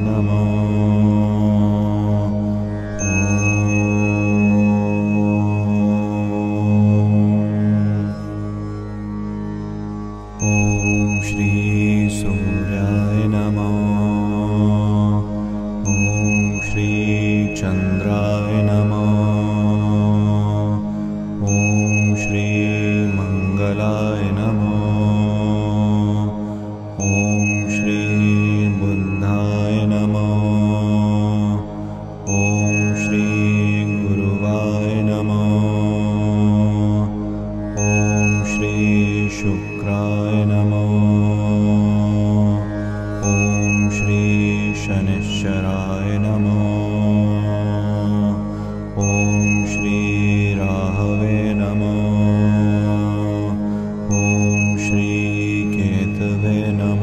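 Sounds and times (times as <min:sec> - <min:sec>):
mantra chanting: 0:00.0 - 0:08.2, 0:10.4 - 0:57.0
steady low drone: 0:00.0 - 0:57.0.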